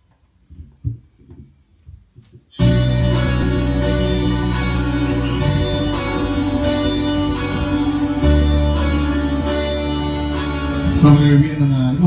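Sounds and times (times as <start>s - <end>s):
instrumental backing track: 2.5s - 12.0s.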